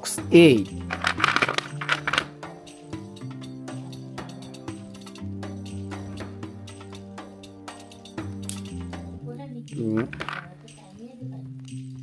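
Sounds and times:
background music: 0:00.0 - 0:12.0
plastic cubes clattering and clicking: 0:00.8 - 0:02.3, 0:10.0 - 0:10.5.

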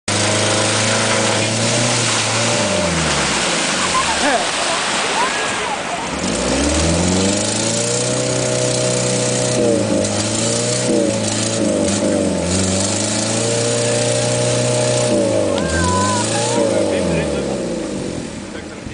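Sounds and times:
engine revving hard: 0:00.0 - 0:04.3, 0:06.1 - 0:18.4
water churning and splashing: 0:00.0 - 0:18.9.

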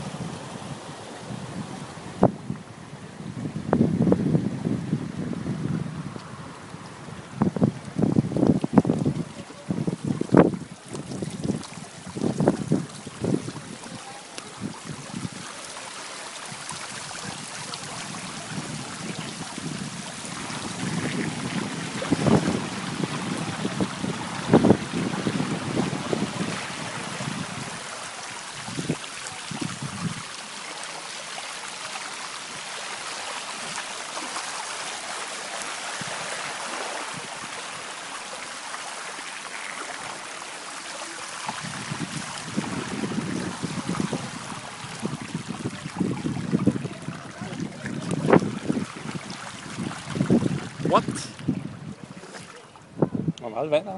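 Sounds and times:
floodwater hissing over street: 0:00.0 - 0:53.9.

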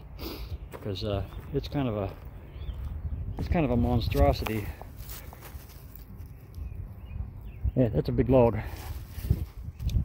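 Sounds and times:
wind rumble on microphone: 0:02.6 - 0:04.9, 0:06.1 - 0:10.0.

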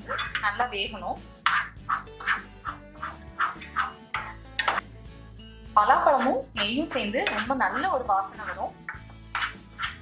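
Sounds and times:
wooden spatula scraping a pot: 0:00.0 - 0:00.7, 0:01.4 - 0:05.0, 0:06.0 - 0:10.0
background music: 0:00.0 - 0:10.0.

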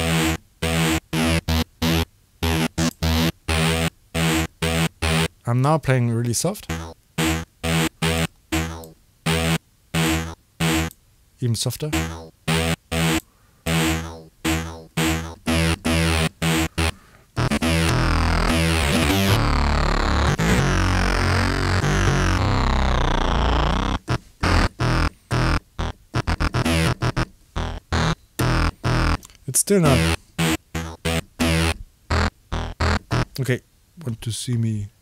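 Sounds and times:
synth keyboard notes: 0:00.0 - 0:05.3, 0:06.6 - 0:10.9, 0:11.9 - 0:29.2, 0:29.8 - 0:33.4.

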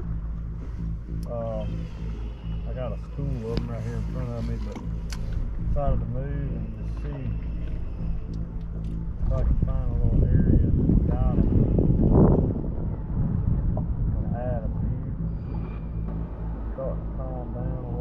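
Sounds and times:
wind buffeting microphone: 0:00.0 - 0:18.0
faint voices: 0:02.6 - 0:04.8, 0:16.8 - 0:18.0.

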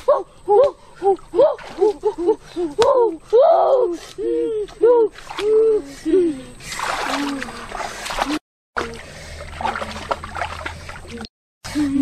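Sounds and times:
water splash in stream: 0:06.6 - 0:11.3.

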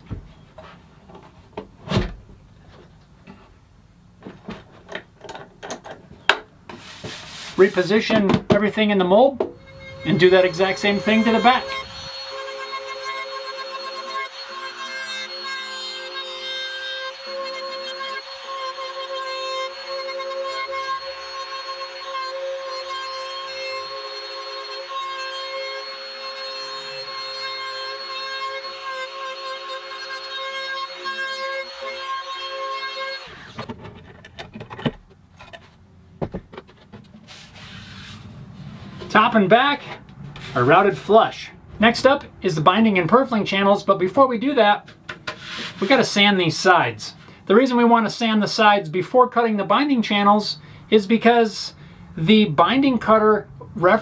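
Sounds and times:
knocks and handling sounds: 0:00.0 - 0:03.6, 0:04.2 - 0:08.7, 0:33.5 - 0:38.3, 0:44.8 - 0:45.8
router motor whining: 0:09.4 - 0:33.7.

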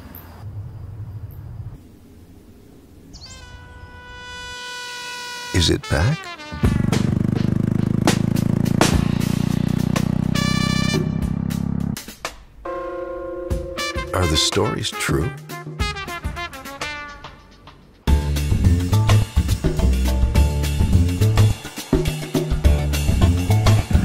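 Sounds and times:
motorcycle engine running: 0:06.6 - 0:12.0.

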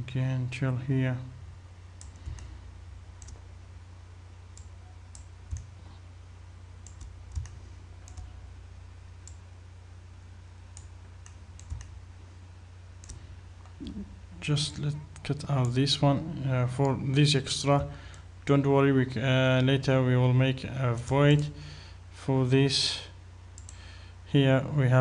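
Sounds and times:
low electrical hum: 0:00.0 - 0:25.0
computer mouse clicking: 0:02.0 - 0:02.5, 0:03.2 - 0:03.4, 0:04.6 - 0:05.8, 0:06.8 - 0:08.4, 0:10.7 - 0:12.0, 0:13.0 - 0:13.9, 0:23.6 - 0:23.8.

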